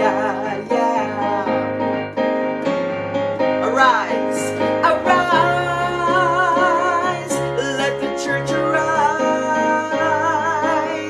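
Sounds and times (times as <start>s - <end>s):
woman singing: 0.0s - 1.7s, 3.6s - 11.0s
digital piano: 0.0s - 11.0s.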